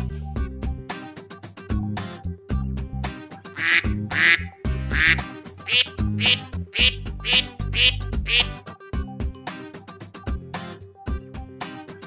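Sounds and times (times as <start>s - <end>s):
background music: 3.6s - 8.6s
duck quacks: 3.6s - 8.6s.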